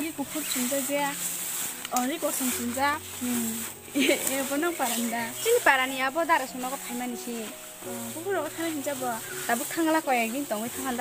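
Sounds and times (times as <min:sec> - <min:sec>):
young women talking: 0:00.0 - 0:01.2, 0:01.9 - 0:07.5, 0:08.1 - 0:11.0.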